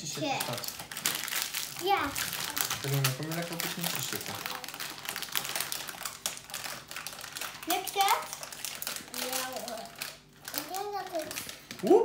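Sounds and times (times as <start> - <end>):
foil and plastic wrappers crinkling: 0.0 - 12.0.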